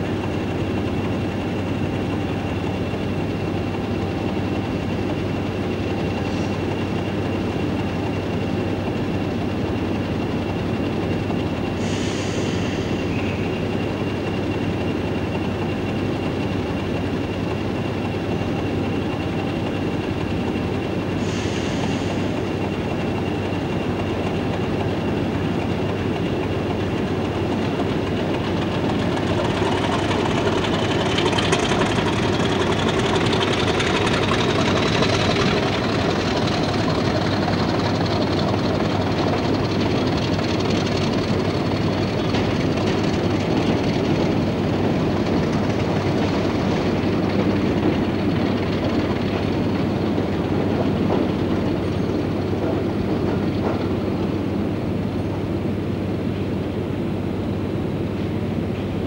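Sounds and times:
diesel locomotive engine running: 0.0s - 59.0s
short hisses: 11.8s - 13.1s.

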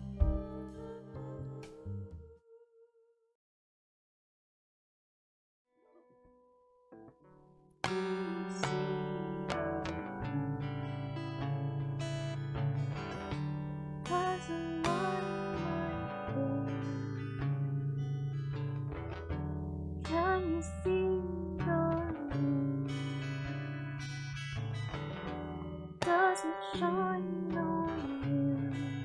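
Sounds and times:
acoustic guitar strumming: 7.0s - 29.0s.

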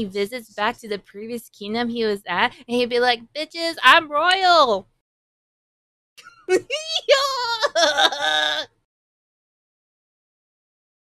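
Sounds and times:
woman laughing: 6.2s - 8.6s.

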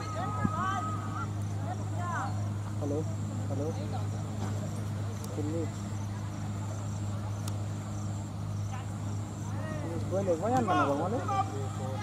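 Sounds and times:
distant shout: 0.0s - 2.4s, 9.5s - 12.0s
crickets chirping: 0.0s - 12.0s
steady low hum: 0.0s - 12.0s.

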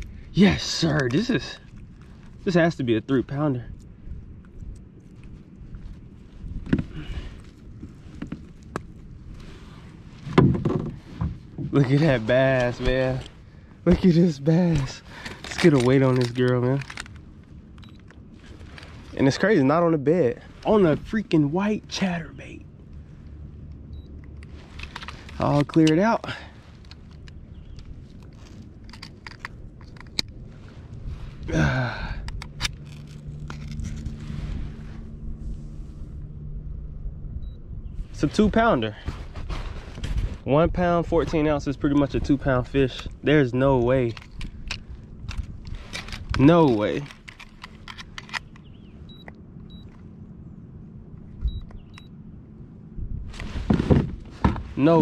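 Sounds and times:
low steady rumble: 0.0s - 55.0s
clicks and rattles from handling: 14.8s - 17.2s, 44.1s - 48.7s.

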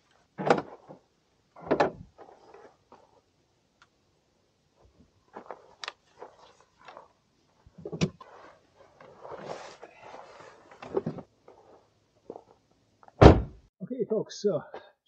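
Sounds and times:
backpack rustling: 8.2s - 12.6s.

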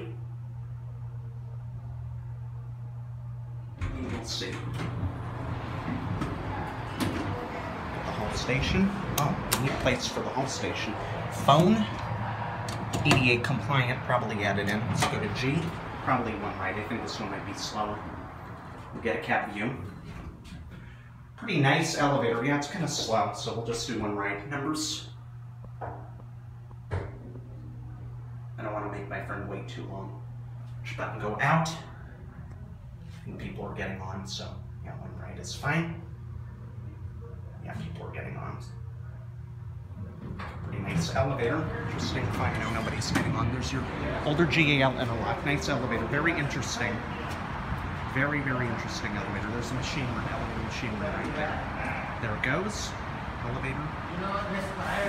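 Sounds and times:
elevator hum: 0.0s - 55.0s
elevator clunk: 40.2s - 43.7s.

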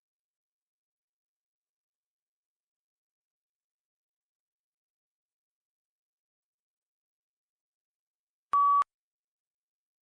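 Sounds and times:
short electronic beep: 8.6s - 8.9s.

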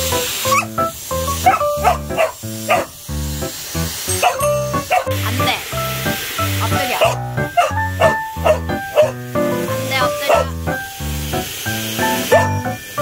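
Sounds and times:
hair dryer blowing: 0.0s - 7.2s, 7.8s - 13.0s
dog barking: 0.5s - 0.7s, 1.4s - 2.9s, 4.2s - 5.2s, 6.9s - 9.2s, 10.2s - 10.5s, 12.3s - 12.6s.

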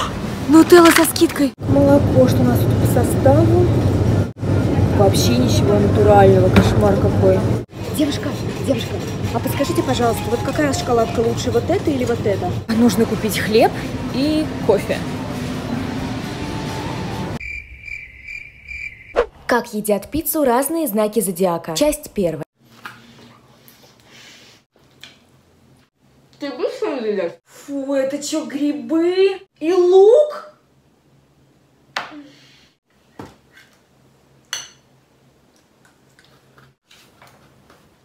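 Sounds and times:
cricket chirping: 17.4s - 19.4s
knife and fork clinking on plate: 34.5s - 34.9s.

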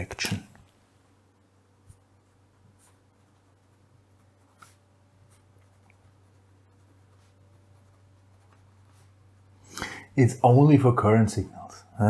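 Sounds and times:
low steady hum: 0.0s - 12.0s
pen scratching on paper: 2.5s - 9.2s.

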